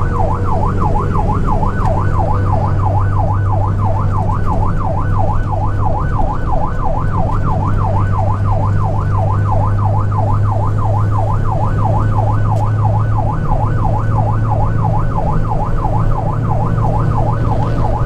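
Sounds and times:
electronic siren yelping: 0.0s - 18.0s
truck engine and road drone: 0.0s - 18.0s.

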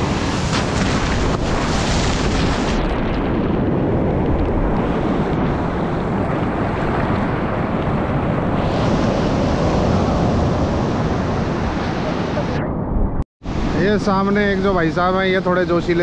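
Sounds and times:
surf breaking on sand: 0.0s - 12.6s
wind on microphone: 0.0s - 15.2s.

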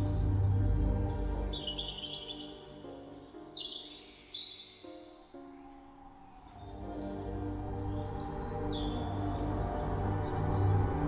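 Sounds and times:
slow ambient music: 0.0s - 11.0s
bird chirping trill: 0.4s - 11.0s.

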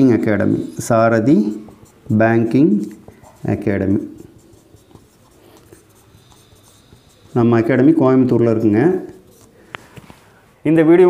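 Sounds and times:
marker pen scratching on whiteboard: 0.0s - 9.7s.

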